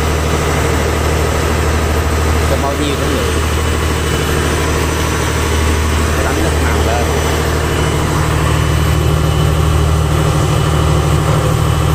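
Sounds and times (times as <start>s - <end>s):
boat engine droning: 0.0s - 11.9s.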